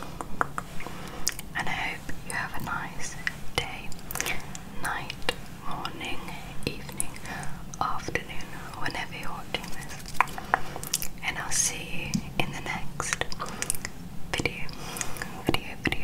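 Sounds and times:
soft breathy whispering: 0.0 - 16.0
wet mouth clicks and pops: 0.1 - 1.5, 3.9 - 4.6, 9.7 - 11.2, 13.1 - 14.0.

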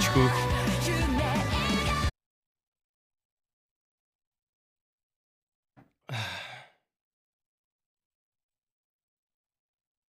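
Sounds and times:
man sighing: 6.0 - 6.8.

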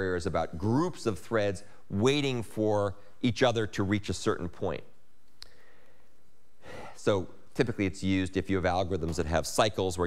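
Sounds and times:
man breathing in: 5.4 - 7.0.

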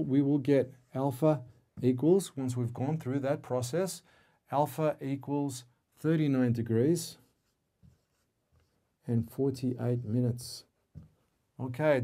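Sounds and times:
marker pen on whiteboard: 7.1 - 11.4.

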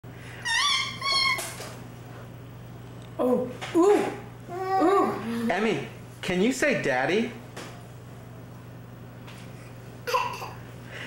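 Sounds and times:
baby squealing: 0.4 - 1.6.

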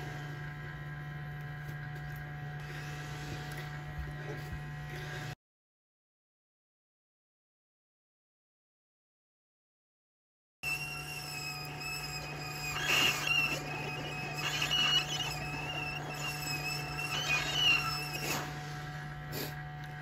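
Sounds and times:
hot air rework station humming: 0.0 - 5.4, 10.6 - 20.0.

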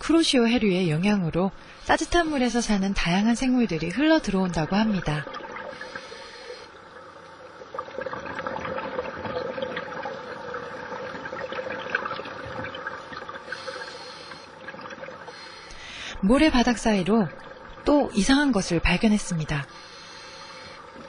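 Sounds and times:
underwater bubbling of exhaled air: 1.6 - 18.0.

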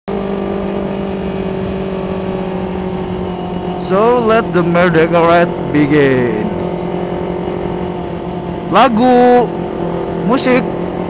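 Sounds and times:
motorcycle engine at steady revs: 0.1 - 11.0.

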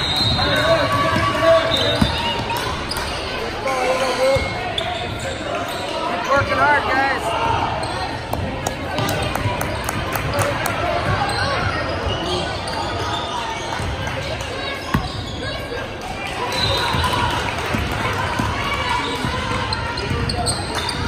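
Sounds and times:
voices of spectators and players: 0.0 - 21.0.

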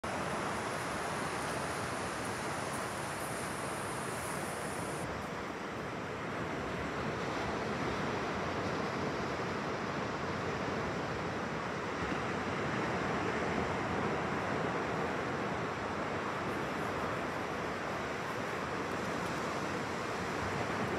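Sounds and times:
ocean waves breaking on beach: 0.0 - 20.9.

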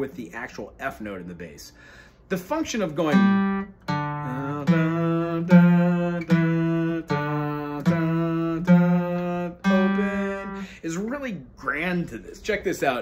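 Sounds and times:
acoustic guitar strumming: 2.6 - 10.7.

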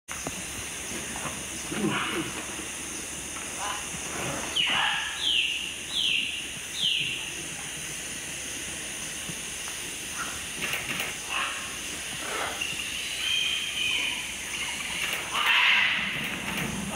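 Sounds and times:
macaws calling: 1.6 - 2.6, 3.4 - 7.4, 10.1 - 16.4.

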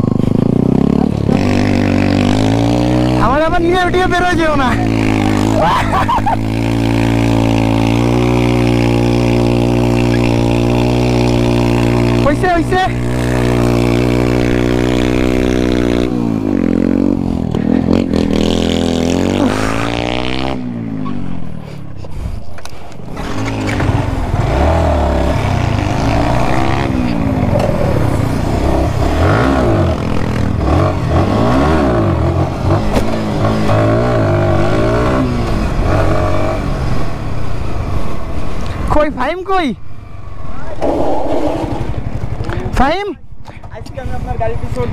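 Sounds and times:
motorcycle engine revving: 0.0 - 21.9, 22.6 - 43.0.

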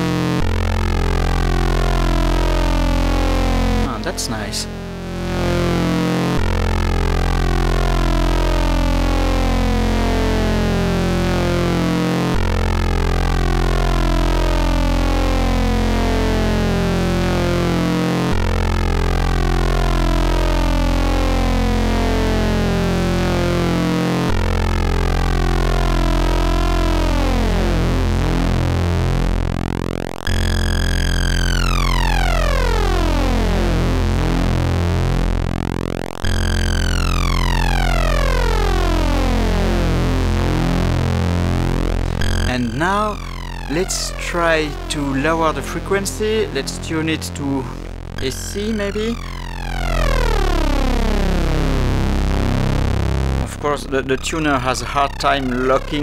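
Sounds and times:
dense synthesizer tone: 0.0 - 56.0.

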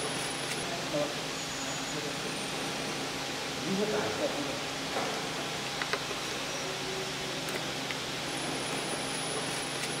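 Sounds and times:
packaging machinery running: 7.4 - 10.0.

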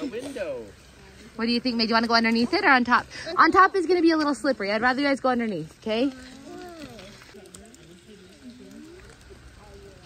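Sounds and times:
faint voices talking: 5.4 - 10.0
stroller wheels crunching on gravel: 5.6 - 10.0.

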